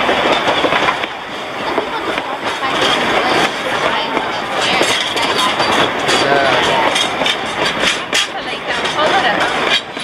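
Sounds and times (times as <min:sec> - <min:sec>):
train wheels rumbling on rail: 0:00.0 - 0:10.0.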